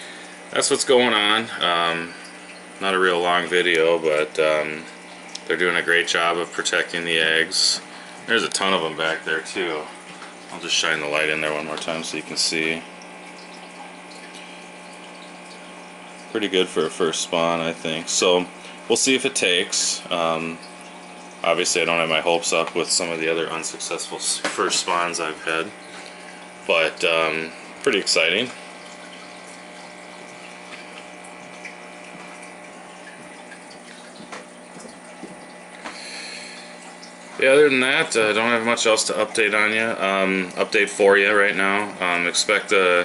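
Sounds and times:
low pump hum: 0:00.0 - 0:43.0
water rushing: 0:18.1 - 0:41.0.

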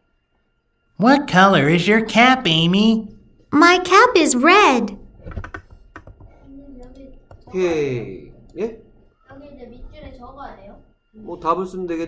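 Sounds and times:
keyboard and mouse clicks: 0:05.3 - 0:07.5.

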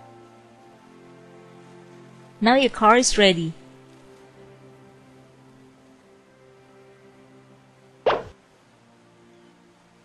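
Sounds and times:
soft background music: 0:00.0 - 0:10.0
pop sound effect falling in pitch: 0:08.1 - 0:08.3.

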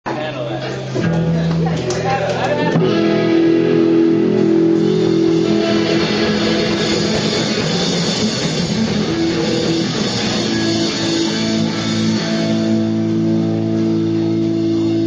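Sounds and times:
electric bass: 0:00.2 - 0:15.0
electric guitar: 0:00.2 - 0:15.0
drum kit: 0:02.7 - 0:15.0.

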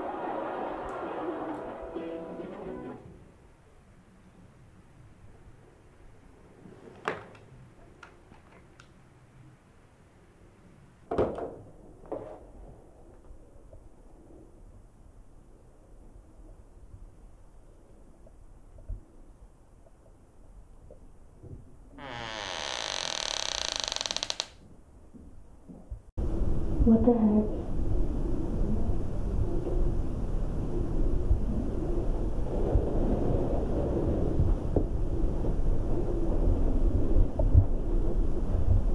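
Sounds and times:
door creaking on hinges: 0:22.0 - 0:24.6.

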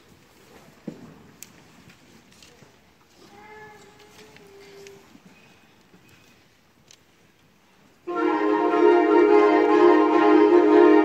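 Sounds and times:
small clicks and rustles: 0:00.0 - 0:07.6.

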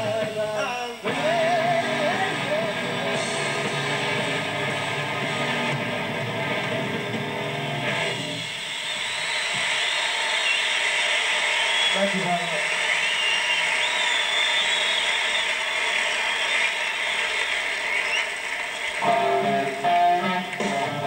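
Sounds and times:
person singing with vibrato: 0:00.0 - 0:04.0
live rock band playing: 0:00.0 - 0:08.7, 0:18.8 - 0:21.0.

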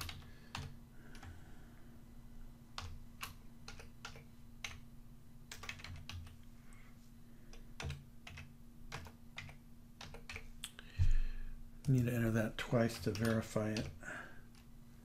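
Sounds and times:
keyboard typing: 0:00.0 - 0:01.3, 0:02.8 - 0:04.8, 0:05.5 - 0:06.4, 0:07.5 - 0:10.5, 0:12.7 - 0:14.7
faint steady hum: 0:00.0 - 0:15.0.

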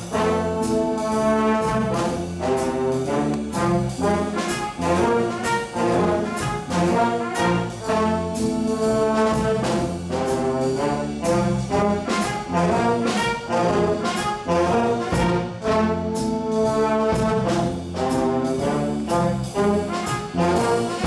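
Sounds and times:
jazz big band playing: 0:00.0 - 0:21.0.

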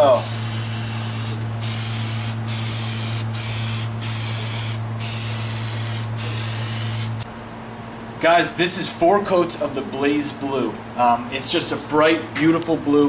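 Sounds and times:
steady low hum: 0:00.0 - 0:13.0
aerosol spray can spraying: 0:00.1 - 0:07.2.

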